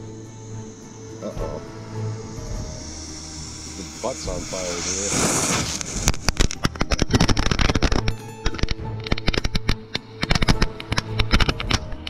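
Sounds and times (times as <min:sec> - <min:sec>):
background music: 0:00.0 - 0:12.0
firework pops and crackles: 0:04.2 - 0:12.0.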